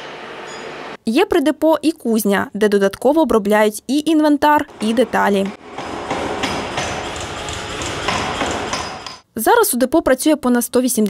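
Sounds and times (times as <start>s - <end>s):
power hammer striking metal: 4.7s - 9.3s.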